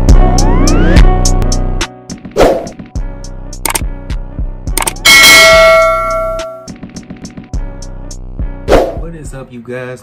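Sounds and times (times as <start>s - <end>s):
background music with a beat: 0.0s - 9.4s
sharp click: 3.6s - 3.9s, 4.7s - 5.0s
loud bell strike ringing: 5.0s - 6.7s.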